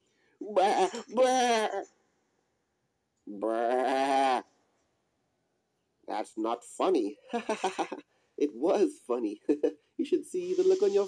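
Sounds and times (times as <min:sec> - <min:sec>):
person imitating lamb bleat: 0:00.4 - 0:01.9, 0:03.3 - 0:04.5.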